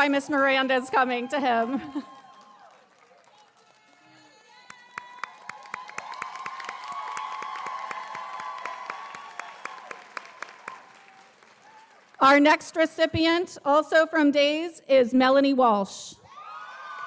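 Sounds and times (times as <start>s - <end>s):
audience applause: 0.0s - 12.3s, 16.3s - 17.0s.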